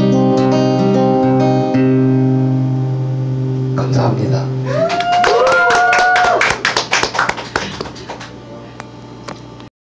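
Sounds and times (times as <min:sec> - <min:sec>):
people whooping: 0:04.6 - 0:07.8
audience applauding: 0:04.7 - 0:08.4.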